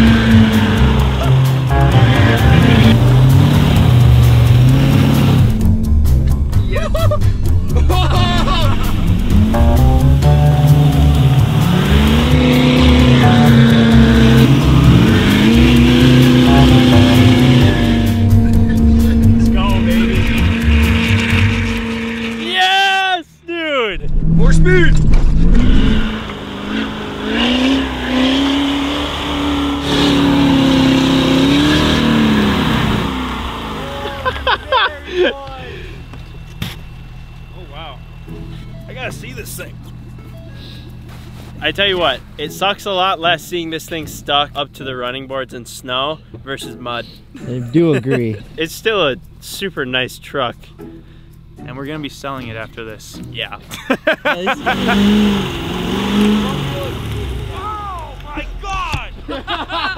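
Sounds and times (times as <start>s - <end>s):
pickup truck engine revving: 0.0s - 22.5s, 24.0s - 35.0s, 53.8s - 58.6s.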